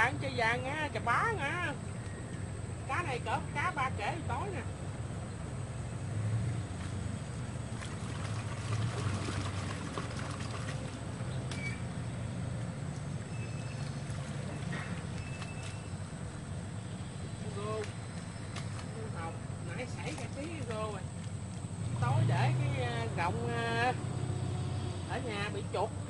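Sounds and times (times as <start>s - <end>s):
leaves rustling: 1.0s - 25.8s
low motor drone: 21.2s - 26.0s.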